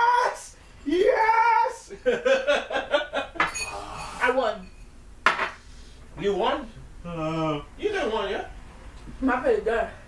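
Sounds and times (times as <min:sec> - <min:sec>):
cutlery clinking on ceramic bowl: 0:03.4 - 0:05.6.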